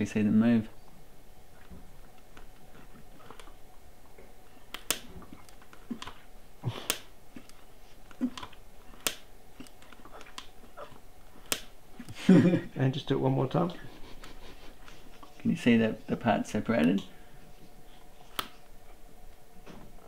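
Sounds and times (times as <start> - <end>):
sharp plastic clicks: 4.7 - 6.2, 6.8 - 10.6, 11.3 - 12.2.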